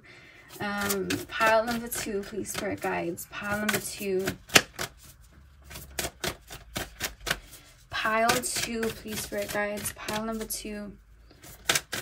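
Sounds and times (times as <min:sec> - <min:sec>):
cards being shuffled: 0:00.4 - 0:10.5, 0:11.3 - 0:12.0.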